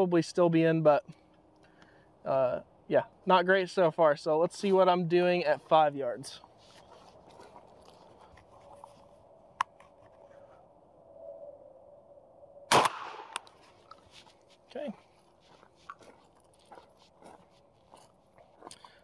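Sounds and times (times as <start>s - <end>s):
shotgun shot with echo: 12.7s - 13.5s.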